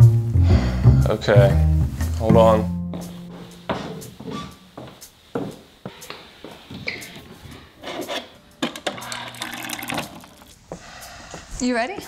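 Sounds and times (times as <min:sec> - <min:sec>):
footsteps on wooden stairs: 0:02.9 - 0:07.6, 0:10.6 - 0:12.0
water pouring into plastic cup: 0:09.0 - 0:10.5.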